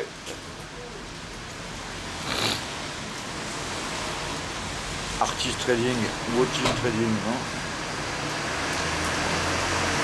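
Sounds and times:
short rush of noise: 2.2 - 2.8.

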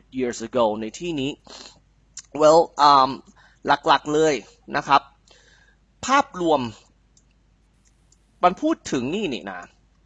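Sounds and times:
man speaking: 0.0 - 1.5, 2.2 - 5.0, 6.0 - 6.9, 8.4 - 9.7
computer mouse clicks: 7.1 - 8.4.

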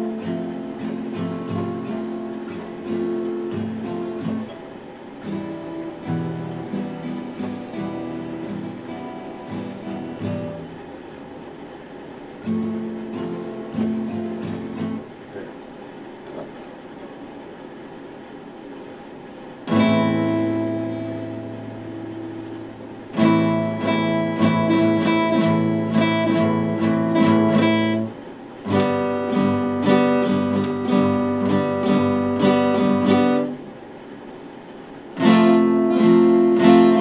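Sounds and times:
acoustic guitar strumming: 0.0 - 15.2, 19.6 - 37.0.

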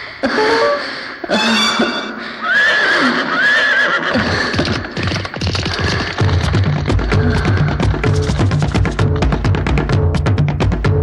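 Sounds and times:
fast percussion beat: 4.6 - 11.0
bass line: 6.2 - 11.0.

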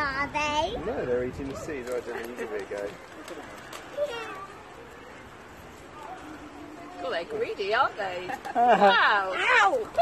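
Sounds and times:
pigeons flapping and pecking: 1.6 - 4.4, 8.2 - 10.0.

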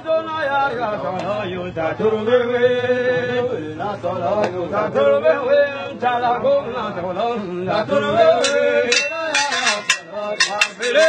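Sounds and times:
voices chanting: 4.0 - 11.0.

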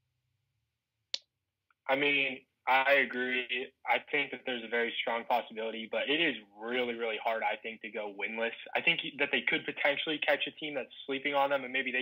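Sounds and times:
man speaking: 1.9 - 12.0.

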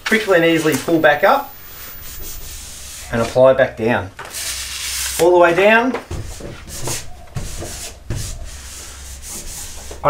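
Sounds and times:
hand rubbing a decal: 0.4 - 3.5, 4.3 - 10.0.

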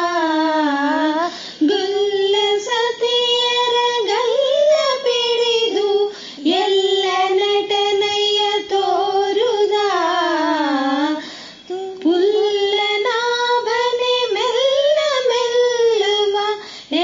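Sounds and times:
woman singing devotional song: 0.0 - 17.0
singer breathing: 1.2 - 1.6, 6.1 - 6.4, 11.2 - 11.7, 16.6 - 17.0.

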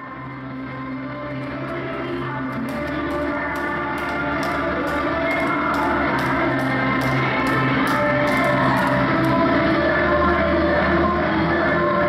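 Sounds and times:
upbeat workout music: 0.0 - 12.0.

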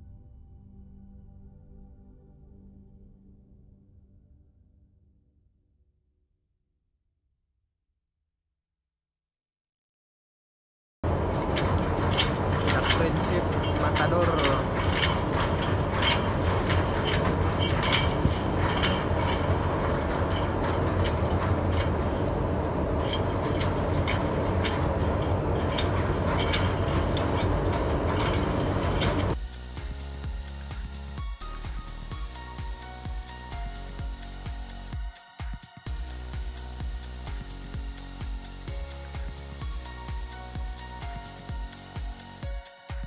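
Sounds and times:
background music with steady beat: 11.1 - 25.9, 26.5 - 43.0
boat engine drone: 11.1 - 30.2.

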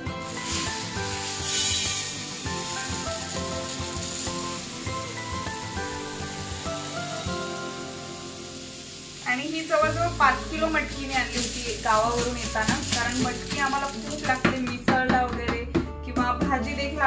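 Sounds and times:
dried beans poured into a jar: 0.0 - 14.4
background music: 0.0 - 17.0.

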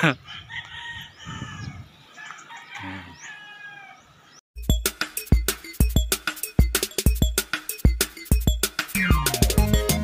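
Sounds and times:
roosters crowing: 0.0 - 4.2
music with heavy beat: 4.6 - 10.0.

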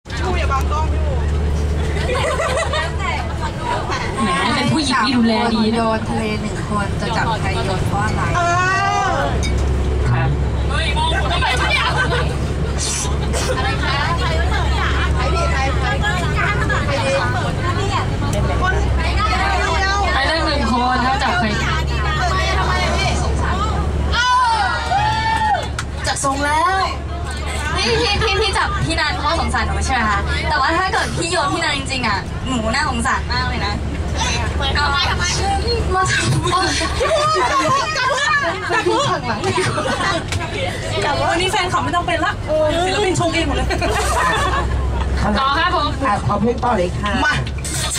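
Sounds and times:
bus engine drone: 0.0 - 47.9
passengers chattering: 0.0 - 47.9.

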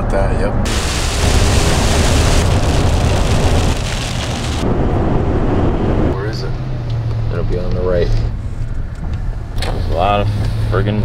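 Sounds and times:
van engine and tyres rumbling: 0.0 - 11.0
rain and road spray hiss: 0.7 - 4.6.

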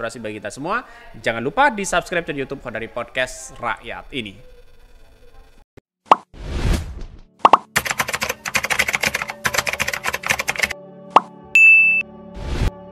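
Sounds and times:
rapid clicking: 7.8 - 10.8
short high beep: 11.6 - 12.1.

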